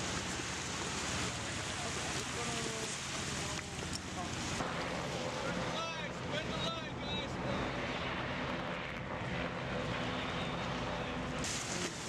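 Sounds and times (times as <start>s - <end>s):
boat engines droning: 0.0s - 12.0s.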